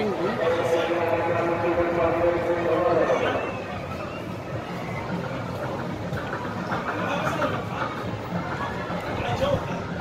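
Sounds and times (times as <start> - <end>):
busy amusement park background: 0.0 - 10.0.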